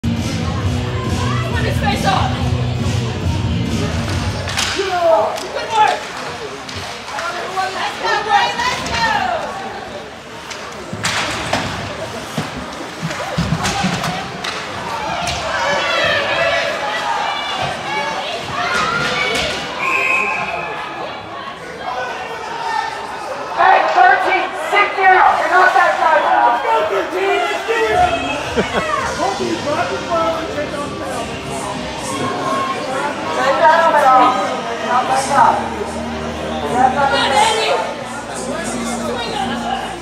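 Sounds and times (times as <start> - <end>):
voices and shouts: 4.4 - 10.1, 13.6 - 40.0
puck and sticks knocking boards: 10.5 - 15.5
referee's whistle blast: 19.8 - 20.7.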